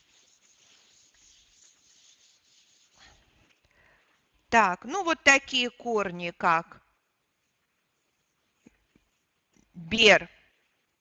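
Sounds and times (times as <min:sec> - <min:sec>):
eraser rubbing on whiteboard: 0:00.0 - 0:03.6.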